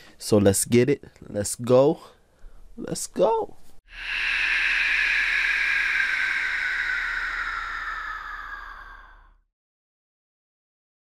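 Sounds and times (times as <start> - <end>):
whoosh sliding down in pitch: 3.9 - 9.3.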